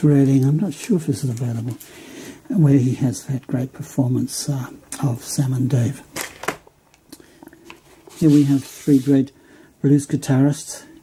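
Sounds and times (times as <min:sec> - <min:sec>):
plastic sleeves rustling: 0:00.0 - 0:02.2, 0:06.1 - 0:09.3.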